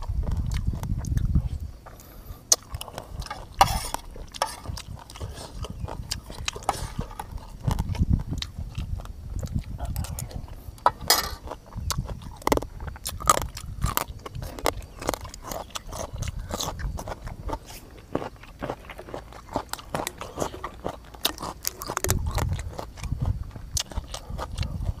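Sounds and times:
man chewing: 0:00.0 - 0:25.0
mouth clicks and smacks: 0:07.3 - 0:10.6, 0:19.5 - 0:25.0.

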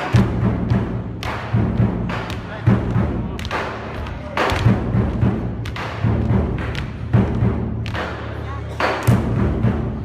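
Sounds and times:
performers stamping on stage: 0:00.0 - 0:09.9
drum-led music: 0:00.0 - 0:10.0.

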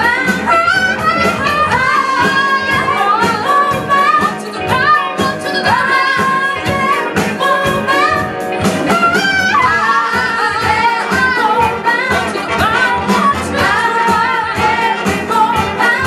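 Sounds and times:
female singers singing together: 0:00.0 - 0:08.3, 0:08.9 - 0:16.0
keyboard: 0:00.0 - 0:16.0
steady drum beat: 0:00.0 - 0:16.0
horn section: 0:08.0 - 0:16.0.

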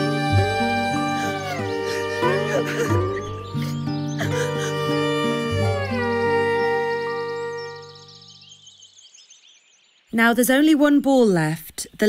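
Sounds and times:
cartoon children wailing and sobbing: 0:00.0 - 0:07.8
music of held chords: 0:00.0 - 0:08.5.

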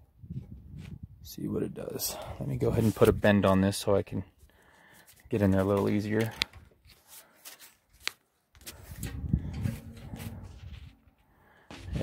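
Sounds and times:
wire handling and rubbing: 0:04.4 - 0:12.0
low rustling rumble: 0:08.9 - 0:12.0.

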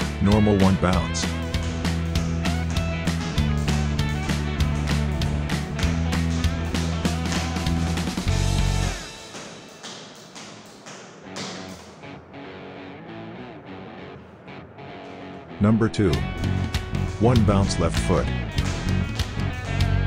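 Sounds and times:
background music with steady beat: 0:00.0 - 0:20.0.

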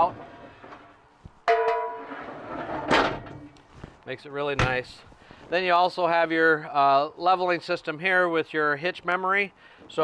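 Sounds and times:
metallic clank: 0:01.5 - 0:03.4
tray sliding rumble: 0:01.8 - 0:03.5.

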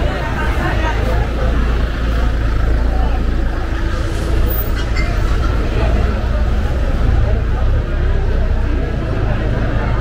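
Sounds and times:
people chattering: 0:00.0 - 0:10.0
vehicle engine rumbling: 0:00.0 - 0:10.0.

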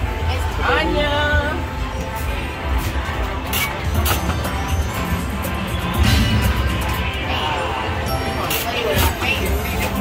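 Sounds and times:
slot machine electronic music: 0:01.6 - 0:10.0.

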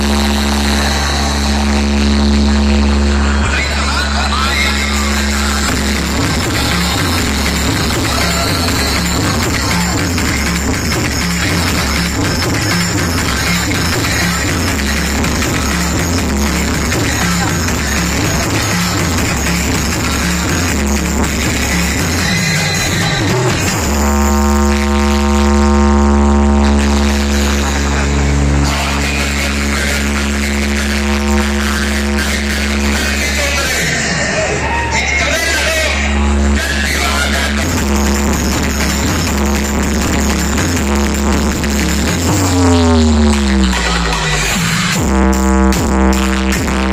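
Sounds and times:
deep held synth tone: 0:00.0 - 0:21.5, 0:23.7 - 0:33.1
electronic dance music with heavy bass: 0:00.0 - 0:46.9.

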